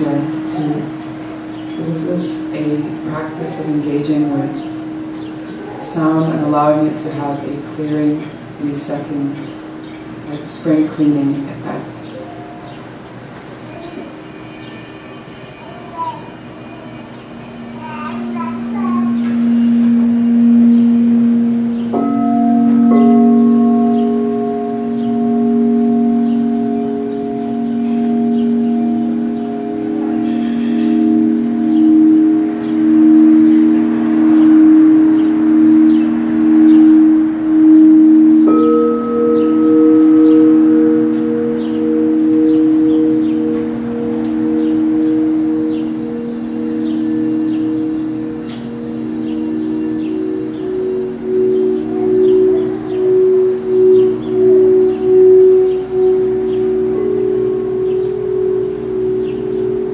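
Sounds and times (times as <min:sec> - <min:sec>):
singing bowl being struck: 0:00.0 - 0:10.2, 0:13.7 - 0:59.9
singing bowls ringing: 0:00.0 - 0:59.9.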